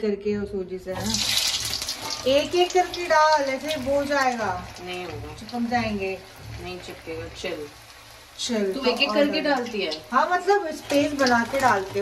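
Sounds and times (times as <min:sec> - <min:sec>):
woman speaking: 0:00.0 - 0:01.2, 0:08.4 - 0:12.0
oil sizzling in a pan: 0:00.9 - 0:12.0.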